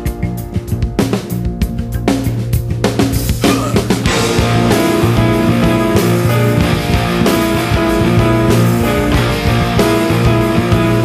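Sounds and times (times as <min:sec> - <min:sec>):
drum kit: 0:00.0 - 0:11.0
electric guitars sustained chords: 0:03.9 - 0:11.0.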